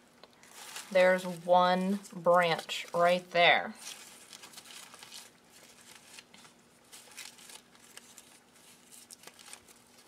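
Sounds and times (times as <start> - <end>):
paper crinkling and rustling: 0.2 - 10.0.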